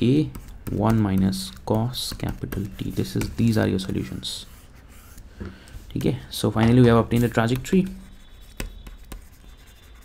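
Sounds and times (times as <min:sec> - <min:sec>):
stylus tapping on screen: 0:00.2 - 0:03.5, 0:05.4 - 0:09.3
stylus scratching on screen: 0:00.2 - 0:05.3, 0:06.9 - 0:10.0.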